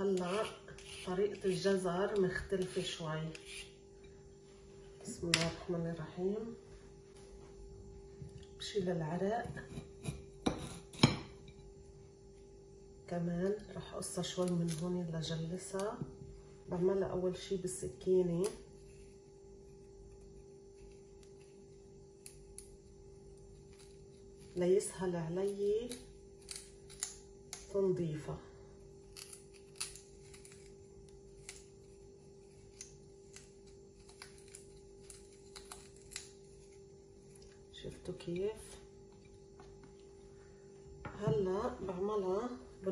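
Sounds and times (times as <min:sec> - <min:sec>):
knife scraping into carrot: 0:00.0 - 0:01.8
faint steady hum: 0:00.0 - 0:42.9.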